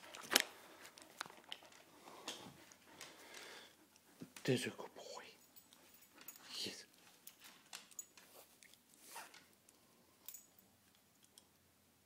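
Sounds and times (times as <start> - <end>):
faint collar and leash clicks: 5.3 - 11.6.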